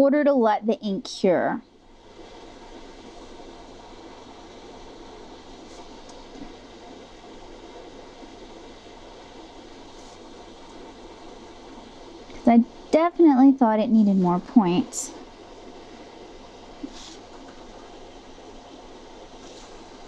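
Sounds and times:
faint steady hiss: 0.0 - 20.0.

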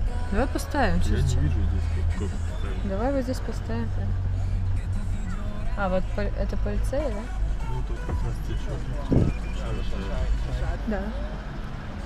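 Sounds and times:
background music: 0.0 - 12.0
car engine rumble: 0.0 - 12.0
tyres on road: 0.0 - 12.0.

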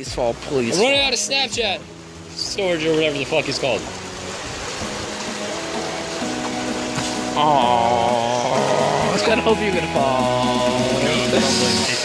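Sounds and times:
flowing creek water: 0.0 - 12.0
music of sustained notes: 0.4 - 12.0.

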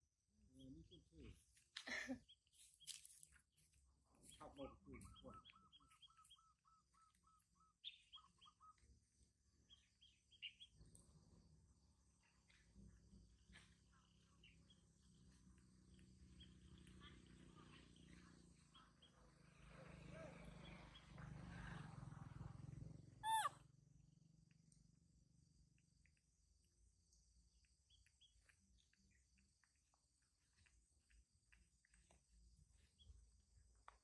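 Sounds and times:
baby monkey squeak: 23.2 - 23.6.

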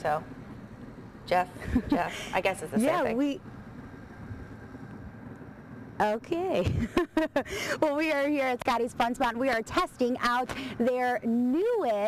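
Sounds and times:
faint background hum and hiss: 0.0 - 12.0.

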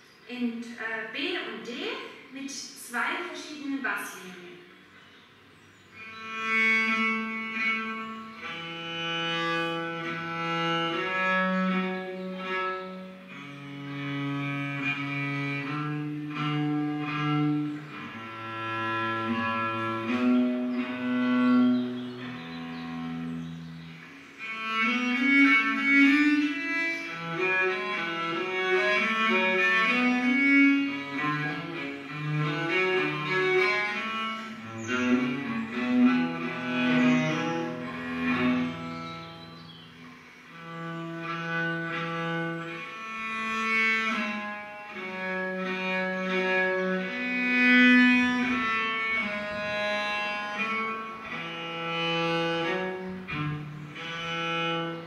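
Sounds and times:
bowed bass viola da gamba: 0.0 - 55.0.

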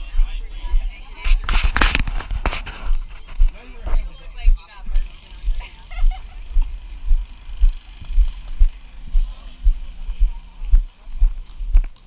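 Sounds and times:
footsteps walking: 0.0 - 12.0.

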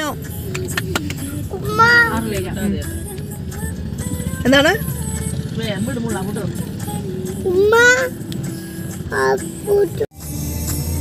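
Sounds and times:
steady low rumble: 0.1 - 7.5.

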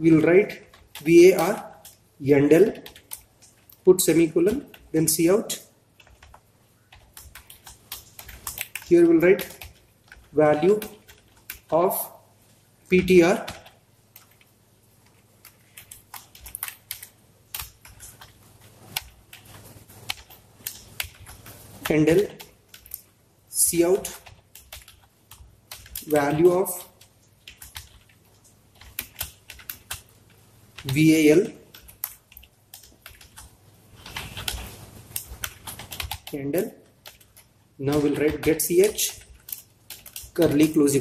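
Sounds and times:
typing on computer keyboard: 0.5 - 2.0, 2.6 - 11.8, 13.0 - 14.5, 15.4 - 41.0
keyboard keystrokes: 6.0 - 11.7, 24.0 - 28.2, 37.0 - 40.8.

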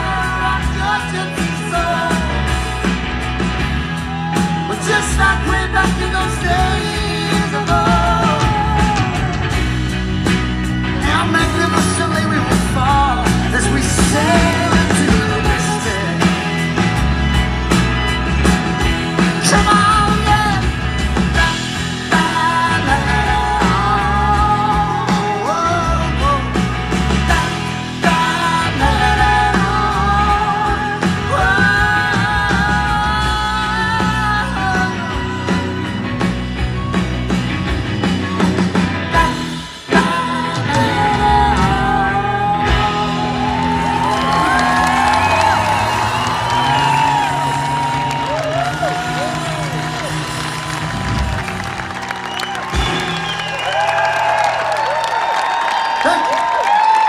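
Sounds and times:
wavering wordless vocal: 0.0 - 2.6, 4.4 - 9.6, 11.0 - 16.5, 19.4 - 36.0, 39.1 - 45.7
guitar and piano music: 0.0 - 55.9
live band sustained notes: 0.0 - 57.0
audience whooping and cheering: 1.2 - 6.8, 40.8 - 57.0.

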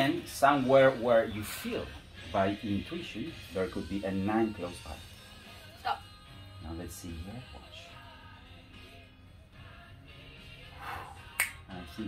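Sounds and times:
faint background music: 0.0 - 12.0
finger snap: 11.2 - 11.9.

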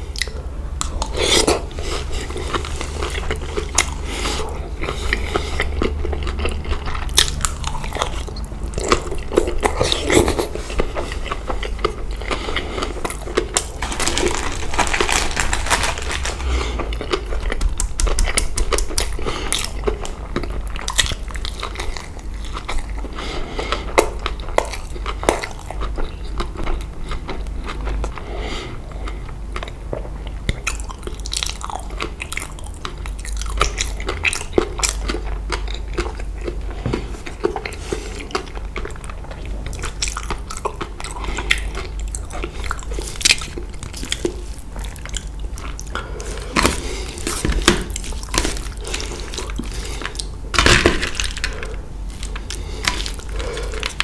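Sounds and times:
wet crunchy chewing: 0.0 - 28.2, 29.0 - 54.0
steady low hum: 0.0 - 54.0.

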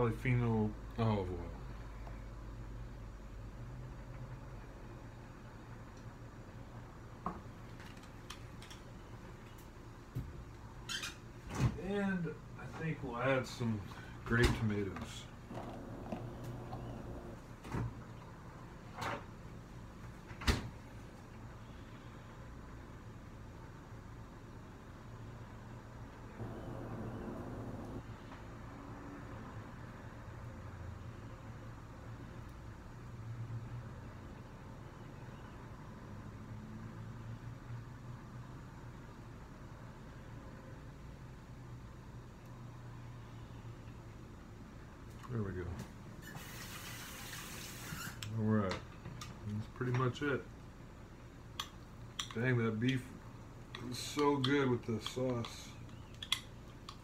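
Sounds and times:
steady low hum: 12.0 - 18.8, 20.8 - 28.4.

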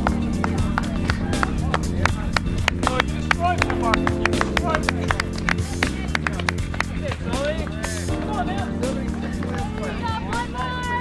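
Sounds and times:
sharp taps or claps: 0.0 - 8.4
music with held chords: 0.0 - 11.0
voices: 0.0 - 11.0.

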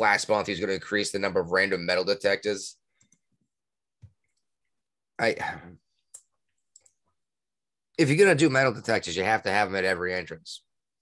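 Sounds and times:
man speaking: 0.0 - 2.8, 5.2 - 5.9, 8.0 - 10.7.

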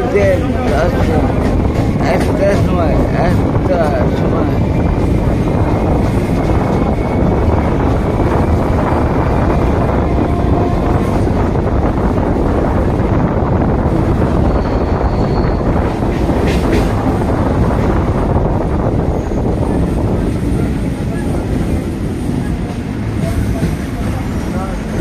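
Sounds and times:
train wheels rumbling on track: 0.0 - 25.0.

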